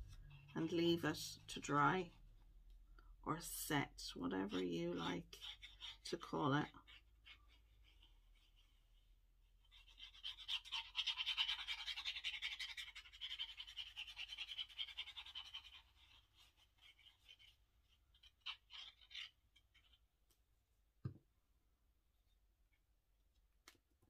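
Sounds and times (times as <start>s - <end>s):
glue nozzle scratching on card: 4.4s - 20.0s.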